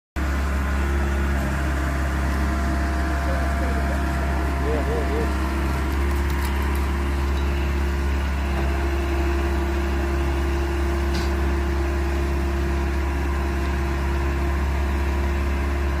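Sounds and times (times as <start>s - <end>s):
engine idling hum: 0.2s - 16.0s.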